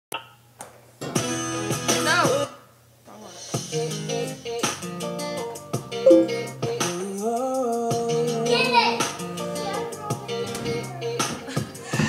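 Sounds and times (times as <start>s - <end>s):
guitar notes and chords: 6.1s - 6.7s.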